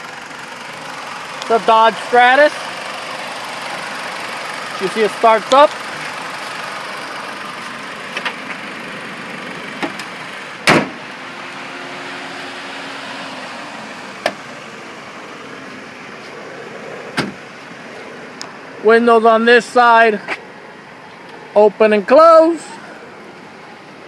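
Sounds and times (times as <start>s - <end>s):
car engine idling: 0.0s - 24.0s
loud thump: 10.6s - 11.0s, 17.2s - 17.4s.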